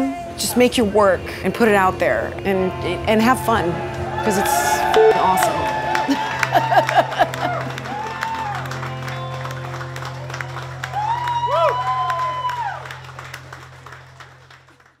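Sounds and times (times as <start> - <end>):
music with long-held low note: 0.0 - 15.0
crowd cheering and clapping: 3.6 - 15.0
woman laughing: 6.1 - 7.7.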